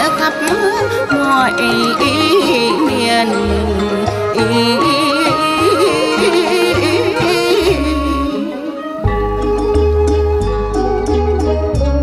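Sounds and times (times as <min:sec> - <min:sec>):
instrumental backing track with bass: 0:00.0 - 0:12.0.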